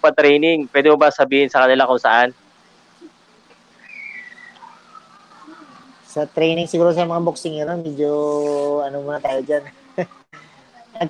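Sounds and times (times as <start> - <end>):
thin high whistle: 3.8 - 5.0.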